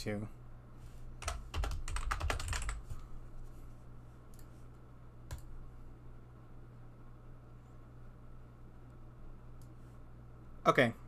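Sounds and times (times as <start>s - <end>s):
low steady hum: 0.0s - 11.0s
typing on computer keyboard: 1.2s - 2.8s.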